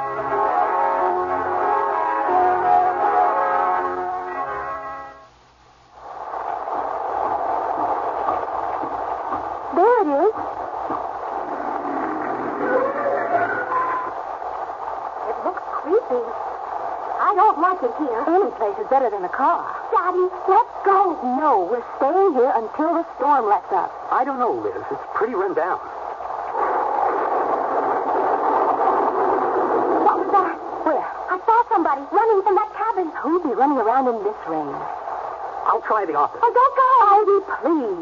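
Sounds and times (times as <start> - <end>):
rain storm sound effect: 5.9 - 19.1, 25.8 - 31.6.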